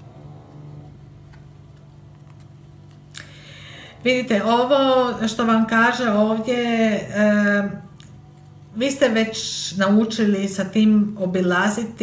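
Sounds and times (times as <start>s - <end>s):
steady low hum: 0.0s - 12.0s
cards being shuffled: 1.2s - 3.2s.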